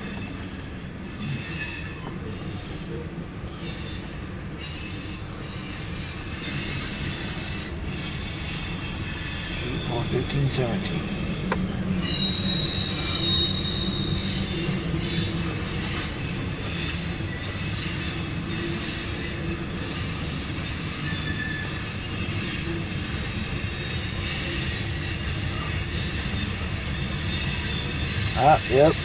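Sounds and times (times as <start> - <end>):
high-pitched wheel squeals: 0.0 - 3.0, 3.6 - 29.0
train wheels rumbling on rail: 0.0 - 29.0.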